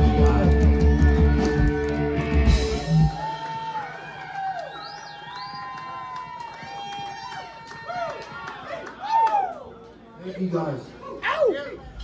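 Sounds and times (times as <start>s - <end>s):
live rock band: 0.0s - 3.4s
audience cheering and whooping: 0.0s - 9.8s
whistle from audience: 4.6s - 6.0s.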